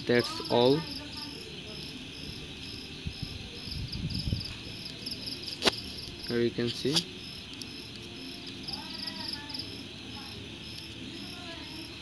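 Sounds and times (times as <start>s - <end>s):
crickets chirping: 0.0s - 12.0s
faint distant voices: 0.0s - 12.0s.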